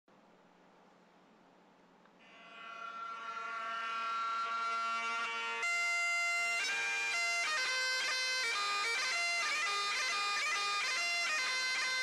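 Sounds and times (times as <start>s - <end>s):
bagpipes droning: 2.2s - 12.0s.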